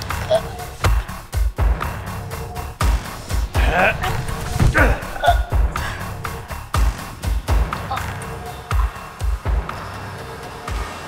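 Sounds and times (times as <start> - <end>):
tense film score: 0.0 - 11.0
deep bass thumps: 3.4 - 7.2.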